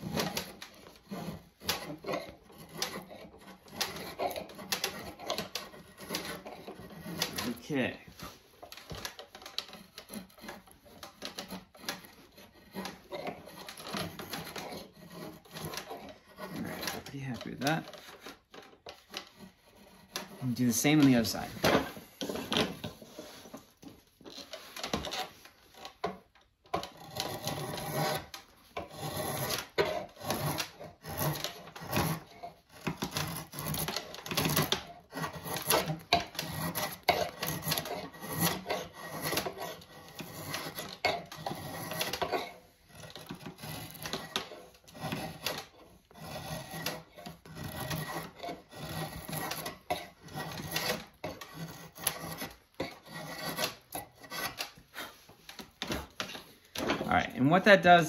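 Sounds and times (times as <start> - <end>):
rasp scraping wood: 0.0 - 58.0.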